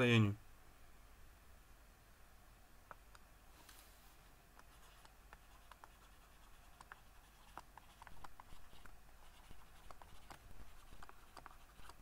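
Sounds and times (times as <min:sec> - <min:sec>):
stylus scratching on tablet: 0:04.6 - 0:12.0.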